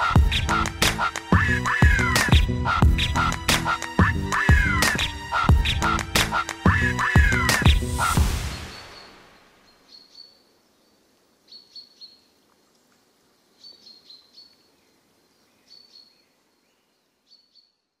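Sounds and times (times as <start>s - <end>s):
beat hit ringing out: 7.2s - 9.2s
faint bird chirps: 8.5s - 18.0s.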